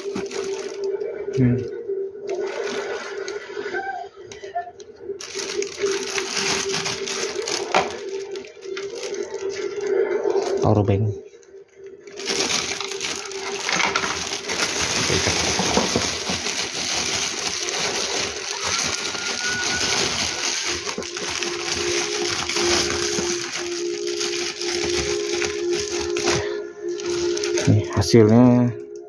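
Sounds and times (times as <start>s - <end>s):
plastic bag rustling and crinkling: 0.0s - 1.2s, 2.3s - 3.5s, 5.2s - 10.9s, 12.0s - 28.3s.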